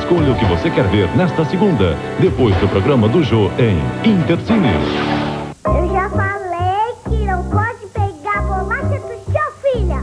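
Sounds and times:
girl singing: 5.7s - 10.0s.

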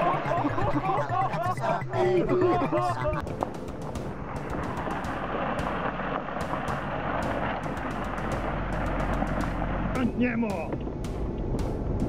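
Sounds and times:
car engine drone: 0.0s - 12.0s
tyre and road noise: 3.3s - 12.0s.

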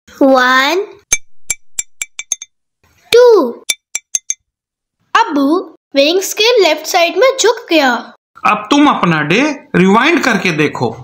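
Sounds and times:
glass marble bouncing on scale: 1.1s - 2.5s, 3.7s - 4.4s.

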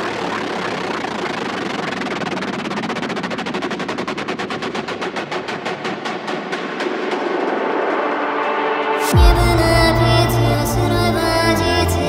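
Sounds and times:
rapid drum roll: 1.1s - 9.8s.

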